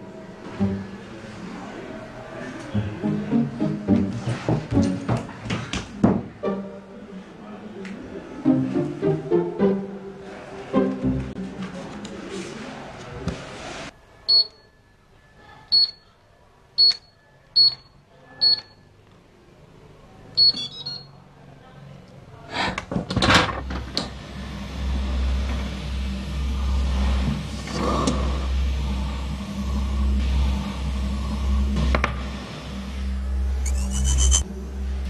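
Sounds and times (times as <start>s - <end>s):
keypad beeping: 20.4s - 21.1s
steady low hum: 23.6s - 35.0s.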